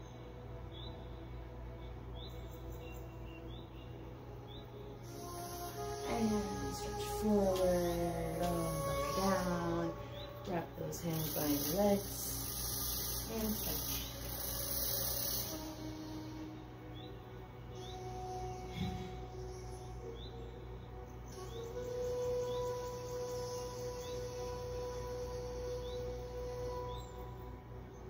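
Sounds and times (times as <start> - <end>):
ambient music with held tones: 0.0 - 28.0.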